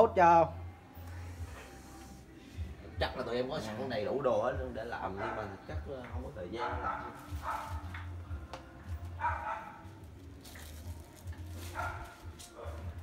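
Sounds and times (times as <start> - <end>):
dog barking: 5.1 - 5.6, 6.5 - 8.0, 9.2 - 9.9, 11.6 - 13.0.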